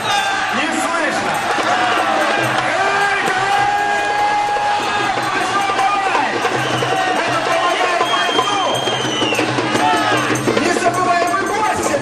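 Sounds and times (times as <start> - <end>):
crowd voices and shouting: 0.0 - 12.0.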